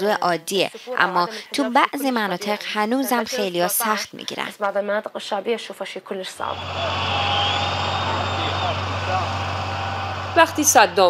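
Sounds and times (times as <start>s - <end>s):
vehicle engines and traffic hum: 6.5s - 11.0s.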